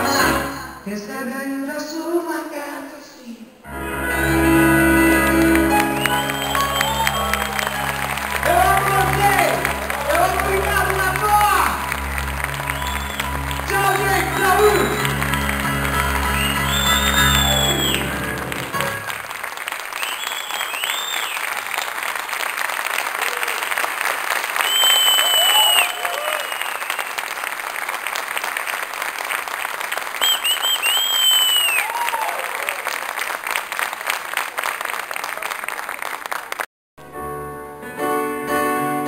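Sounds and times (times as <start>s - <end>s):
keyboard song: 0.0s - 0.8s, 3.7s - 19.3s, 37.0s - 39.0s
audience applauding: 3.8s - 36.7s
shrill whistles: 5.8s - 8.2s, 12.7s - 13.7s, 16.2s - 18.4s, 20.0s - 21.5s, 24.6s - 27.2s, 30.2s - 32.2s.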